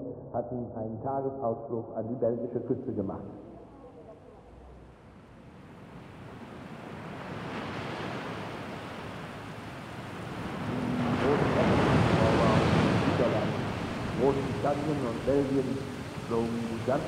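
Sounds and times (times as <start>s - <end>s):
wind: 0.0s - 17.0s
sea water rushing: 5.6s - 17.0s
faint voices: 10.6s - 17.0s.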